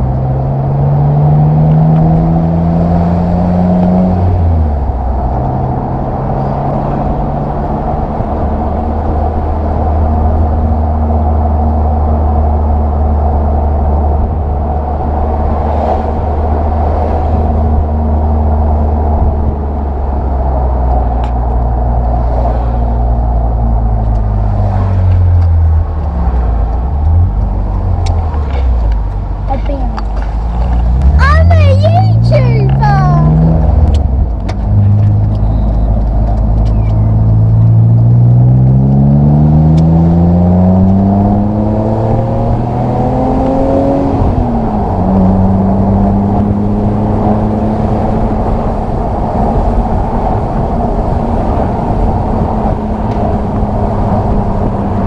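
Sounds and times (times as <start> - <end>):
car engine accelerating: 0.0 - 55.0
road noise: 0.0 - 55.0
wind noise: 0.0 - 55.0.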